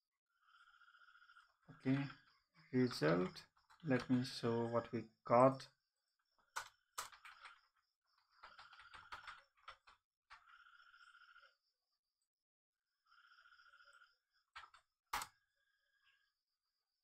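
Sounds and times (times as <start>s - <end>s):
keyboard typing: 2.8s - 4.4s, 6.4s - 10.5s, 14.5s - 15.4s.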